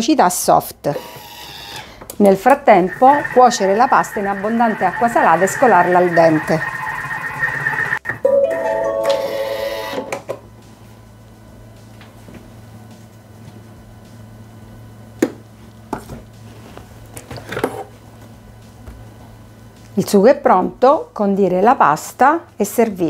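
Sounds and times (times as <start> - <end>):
electronic appliance melody: 2.4 - 10.3.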